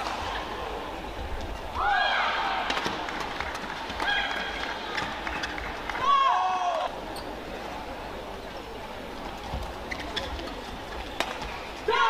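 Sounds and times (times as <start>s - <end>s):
shoes squeaking on court: 9.5s - 11.8s.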